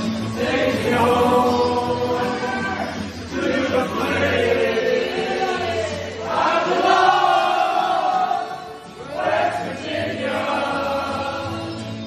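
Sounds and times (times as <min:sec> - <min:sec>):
choir-like singing: 0:00.0 - 0:12.0.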